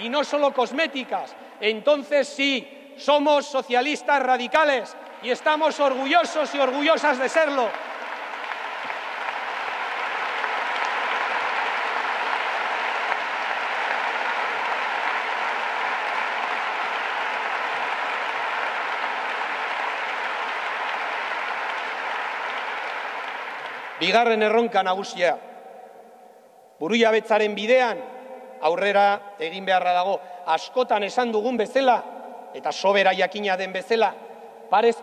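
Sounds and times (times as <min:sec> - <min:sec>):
audience applauding: 0:05.0 - 0:24.2.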